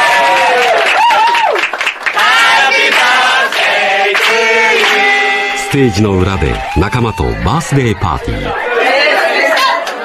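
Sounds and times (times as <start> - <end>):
man's voice: 5.6 - 8.7
group of people talking: 5.6 - 10.0.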